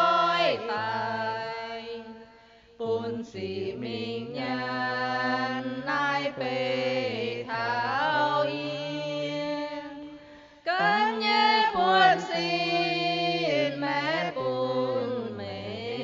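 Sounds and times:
woman singing hymn: 2.8s - 10.1s, 10.7s - 16.0s.

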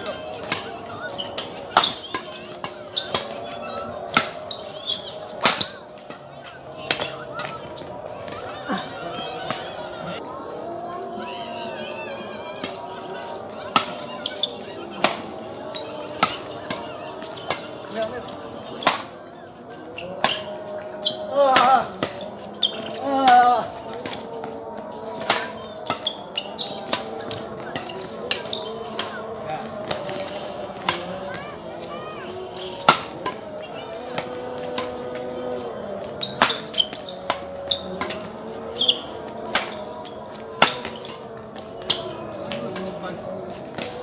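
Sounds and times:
racket striking shuttlecock: 0.0s - 9.9s, 12.6s - 19.4s, 20.2s - 31.9s, 32.5s - 35.2s, 36.0s - 43.0s, 43.6s - 44.0s
night insects chirring: 0.0s - 44.0s.

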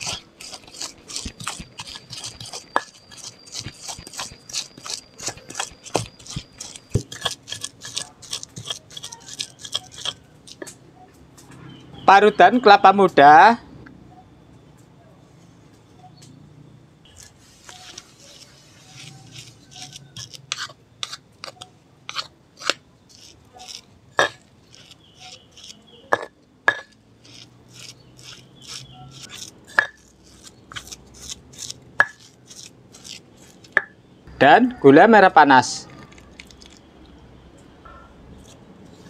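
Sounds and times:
stone pestle knocking and scraping: 0.0s - 10.8s, 19.0s - 34.0s.

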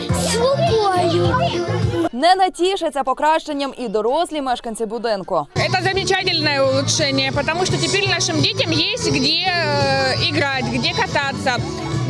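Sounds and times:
background music with bass: 0.0s - 2.1s, 5.6s - 12.0s
children chattering: 0.0s - 2.7s, 3.4s - 12.0s.

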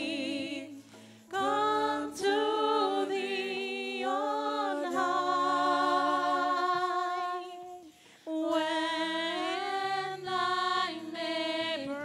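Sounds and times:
person singing a hymn: 0.0s - 12.0s.

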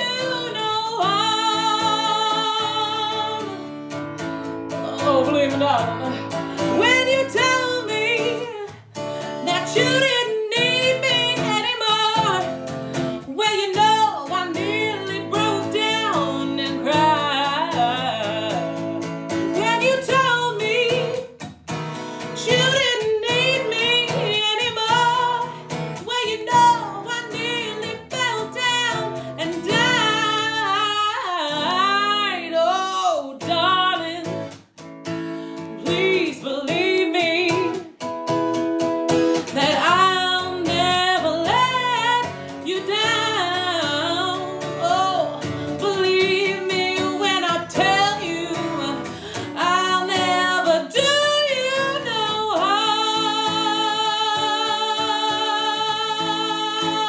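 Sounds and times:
woman singing with vibrato: 0.0s - 3.9s, 4.5s - 34.5s, 35.3s - 38.0s, 39.3s - 57.0s
strummed acoustic guitar: 0.0s - 57.0s.

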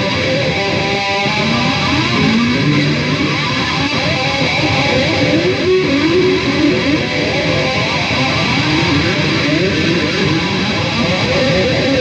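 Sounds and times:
distorted electric guitar shredding: 0.0s - 12.0s.

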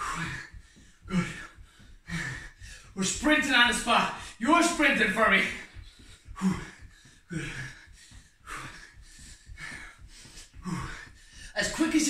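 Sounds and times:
man panting hard: 0.0s - 12.0s.

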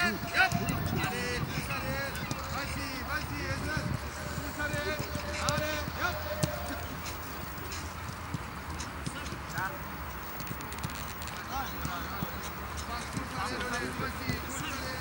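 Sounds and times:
distant shouts from players: 0.0s - 7.1s
footballs kicked on grass: 3.4s - 13.6s.

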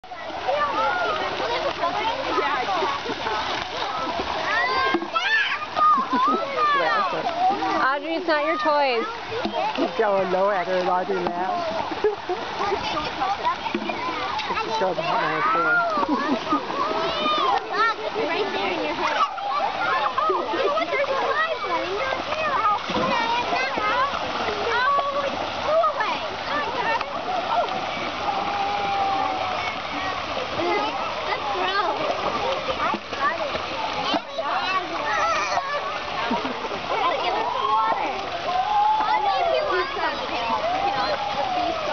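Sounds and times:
children shouting and chattering: 0.0s - 41.9s
water splashing: 0.0s - 41.9s.

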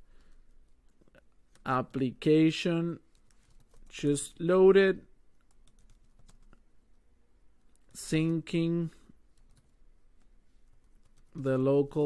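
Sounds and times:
keyboard keys typing: 3.0s - 3.9s, 5.3s - 6.6s, 9.3s - 11.5s.

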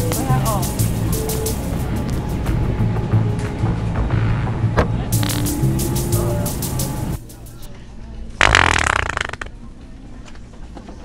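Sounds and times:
fake wet fart noise: 8.4s - 9.5s.

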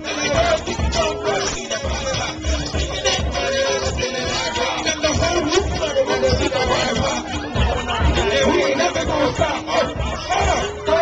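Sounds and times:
hip-hop music over a pa: 0.0s - 11.0s
pounding bass beat: 0.0s - 11.0s
voices shouting: 0.0s - 11.0s.

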